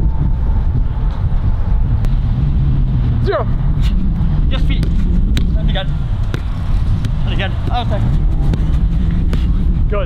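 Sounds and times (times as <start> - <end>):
low rumble: 0.0 - 10.0
football being kicked: 4.6 - 5.6, 6.3 - 9.6.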